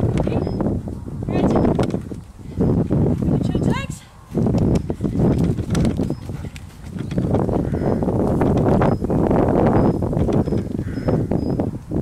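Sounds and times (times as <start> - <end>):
horse hoofbeats on loose ground: 1.3 - 10.9.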